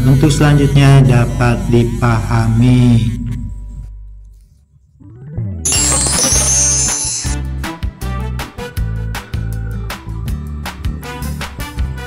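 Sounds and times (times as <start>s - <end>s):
high-pitched shimmering burst: 5.7s - 7.4s.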